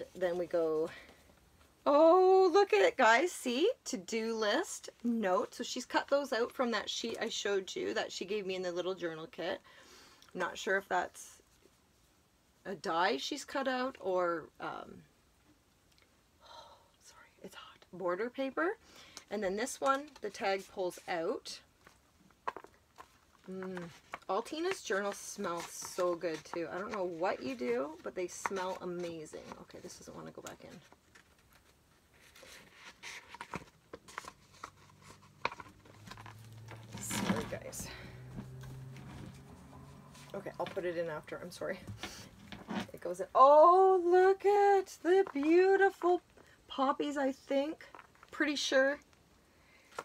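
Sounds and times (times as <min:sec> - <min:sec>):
woman speaking: 0:00.0 - 0:01.1, 0:01.8 - 0:09.6, 0:10.3 - 0:11.4, 0:12.6 - 0:15.0, 0:17.4 - 0:21.6, 0:23.4 - 0:30.9, 0:36.9 - 0:38.2, 0:40.3 - 0:41.9, 0:42.7 - 0:49.1
paper handling: 0:22.5 - 0:37.8.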